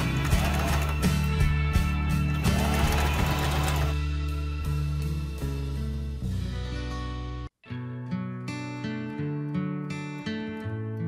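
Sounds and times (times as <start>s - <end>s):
sewing machine running: 0.0s - 1.2s, 2.4s - 4.0s
background music: 0.0s - 11.0s.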